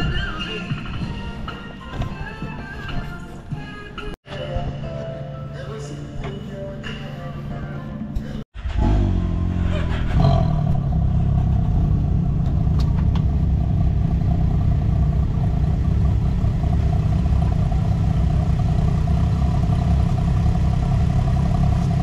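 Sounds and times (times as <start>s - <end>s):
vehicle engine revving: 8.6s - 22.0s.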